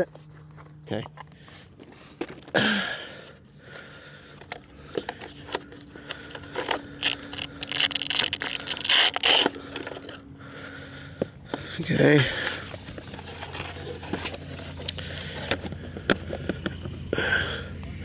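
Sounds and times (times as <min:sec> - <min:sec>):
man clearing throat: 0:02.5 - 0:03.1
handling scrapes and clicks: 0:04.2 - 0:10.3, 0:12.3 - 0:17.0.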